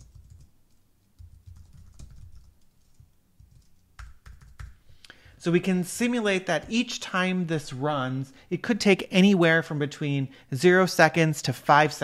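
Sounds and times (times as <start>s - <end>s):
typing on a keyboard: 0.0s - 4.8s.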